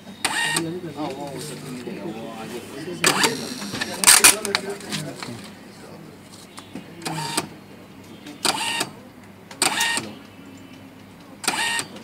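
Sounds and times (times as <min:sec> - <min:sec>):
receipt printer printing: 0:00.1 - 0:01.8, 0:03.0 - 0:05.6, 0:07.0 - 0:07.6, 0:08.4 - 0:09.0, 0:09.6 - 0:10.2, 0:11.4 - 0:12.0.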